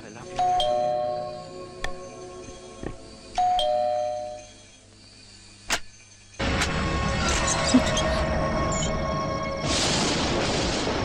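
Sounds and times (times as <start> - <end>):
two-tone doorbell chime: 0.4 - 1.4, 3.4 - 4.6.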